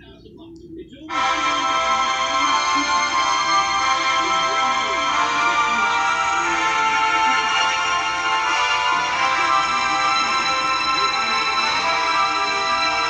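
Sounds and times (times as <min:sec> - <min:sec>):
music from television speakers: 0:01.1 - 0:13.0.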